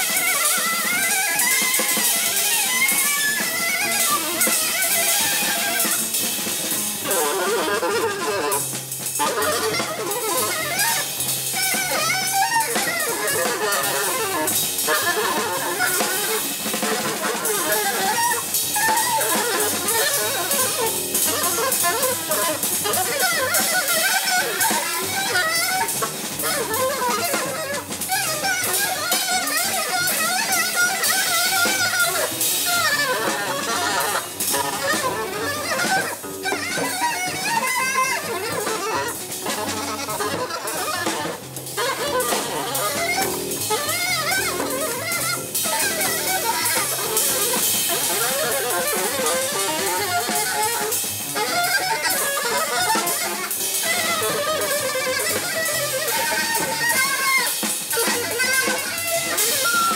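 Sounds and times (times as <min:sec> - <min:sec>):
busy cymbals and drums: 0:00.0 - 0:59.9
saxophone blowing wavering lines: 0:00.0 - 0:59.9
plucked double bass: 0:33.0 - 0:50.6.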